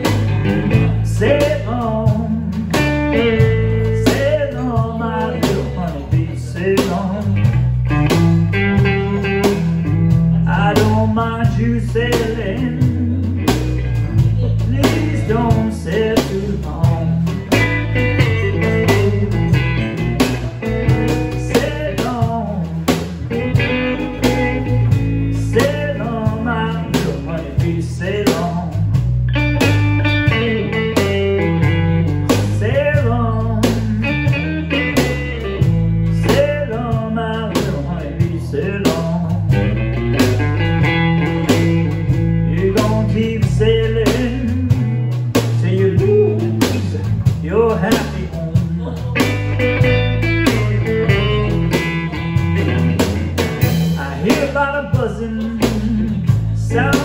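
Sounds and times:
drum kit: 0.0 - 57.0
electric bass: 0.0 - 57.0
electric guitar with bending notes: 0.0 - 57.0.

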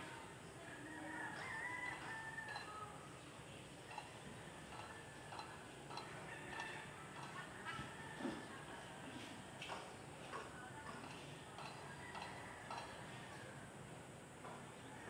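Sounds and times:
faint rooster crow: 0.6 - 3.2, 4.4 - 9.3, 11.6 - 15.0.

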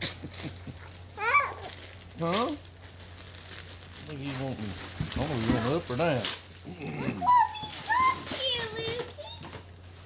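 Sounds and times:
wrapping paper crinkling and tearing: 0.0 - 10.0
small child high-pitched vocal sounds: 1.2 - 1.8, 6.7 - 9.5.

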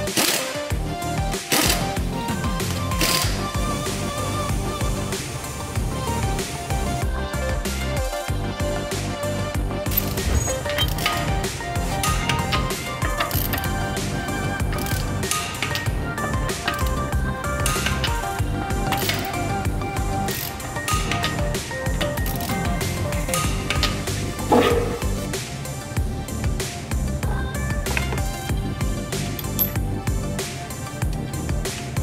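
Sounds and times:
background music: 0.0 - 32.0
ratchet wrench clicking: 0.1 - 0.6, 1.5 - 1.9, 3.0 - 3.4, 9.9 - 11.3, 12.0 - 13.8, 14.7 - 15.9, 16.6 - 19.4, 20.3 - 25.0, 29.3 - 29.8.

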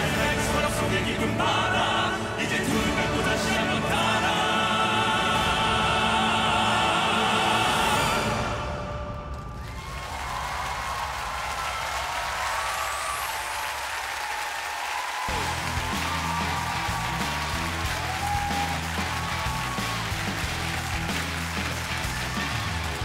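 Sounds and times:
music: 0.0 - 10.4, 15.2 - 23.0
audience applauding: 9.4 - 23.0
rhythmic bass line: 15.3 - 23.0.

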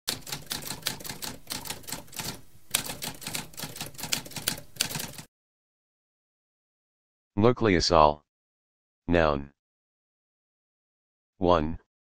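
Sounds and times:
typewriter typing: 0.1 - 5.3.

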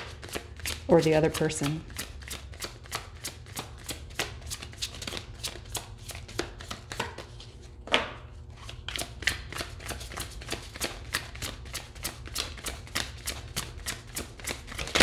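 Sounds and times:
cards being shuffled: 0.0 - 7.6, 8.6 - 15.0.

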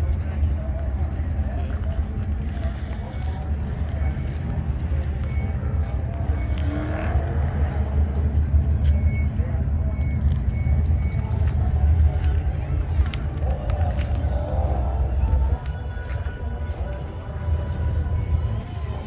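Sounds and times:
people talking: 0.0 - 19.0
steady low rumble: 0.0 - 19.0.

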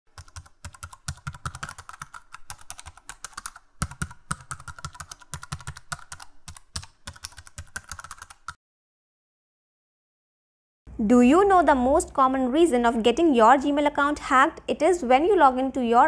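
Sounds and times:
rapid keyboard typing: 0.1 - 8.6.

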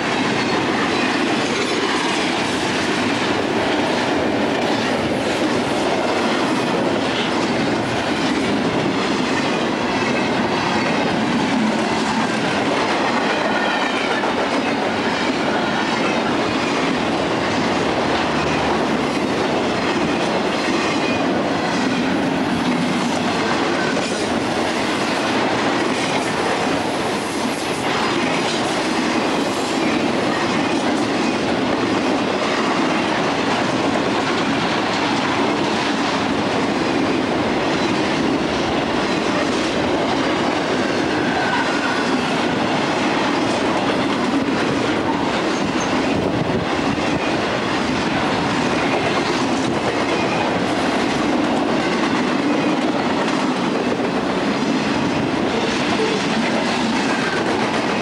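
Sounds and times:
freight train wheels on rails: 0.0 - 58.0.

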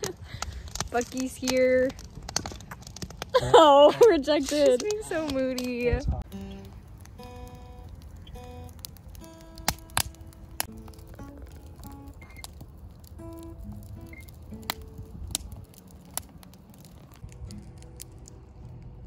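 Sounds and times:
campfire crackling and popping: 0.0 - 19.0
acoustic guitar picked slowly: 6.3 - 16.7, 17.3 - 19.0.

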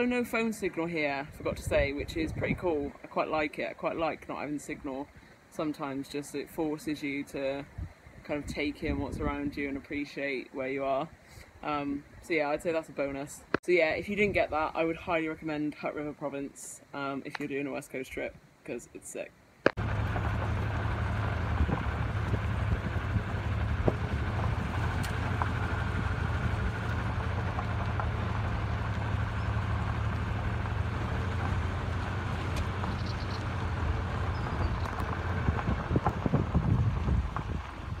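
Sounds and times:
car engine and tyres rumbling: 19.7 - 38.0.

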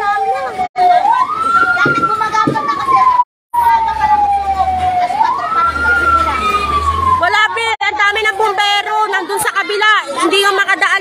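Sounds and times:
fire truck siren wailing: 0.0 - 9.5.

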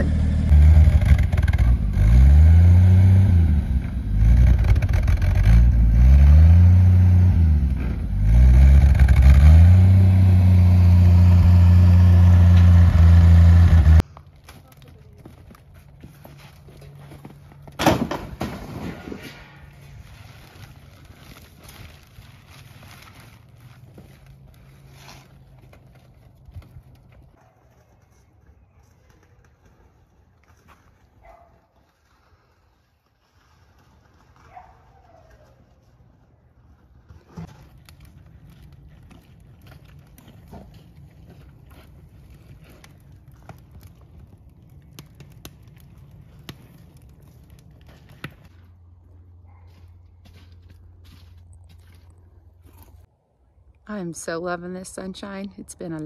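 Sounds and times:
motor engine revving: 0.0 - 14.0
sharp clatter of boards: 17.8 - 19.5
rustling: 18.8 - 48.8.

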